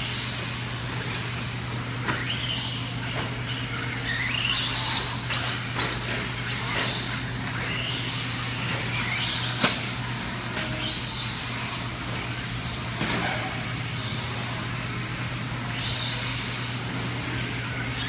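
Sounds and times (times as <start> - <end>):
rc car motors whining: 0.0 - 18.0.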